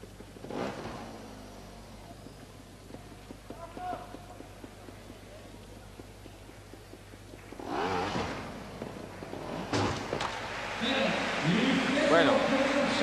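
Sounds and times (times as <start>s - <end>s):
motorcycle landing knock: 7.6s - 10.4s
crowd voices in a hall: 10.0s - 13.0s.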